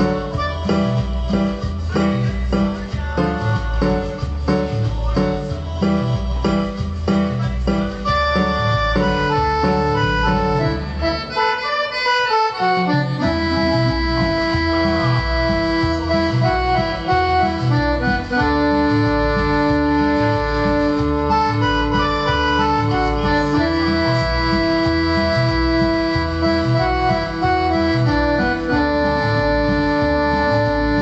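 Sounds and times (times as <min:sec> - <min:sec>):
steady bass beat: 0:00.0 - 0:11.6, 0:12.5 - 0:31.0
synthesizer lead melody: 0:00.0 - 0:31.0.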